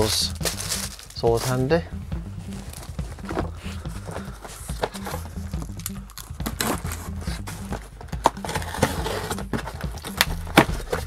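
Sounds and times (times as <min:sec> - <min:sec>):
cardboard box rustling and scraping: 0:00.0 - 0:01.8, 0:02.4 - 0:11.0
low background music: 0:00.0 - 0:11.0
sharp knocks on box: 0:06.4 - 0:11.0.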